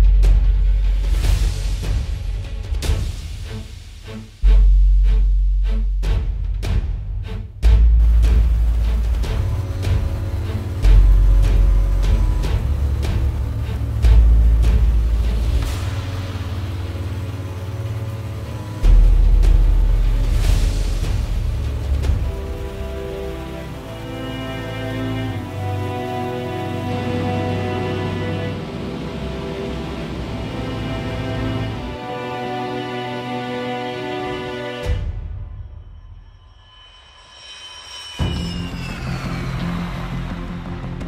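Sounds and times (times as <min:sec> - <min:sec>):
low rumbling drone: 0:04.4 - 0:34.6, 0:38.2 - 0:41.0
steady rushing noise: 0:07.0 - 0:34.9
jet engines whining: 0:08.3 - 0:34.6.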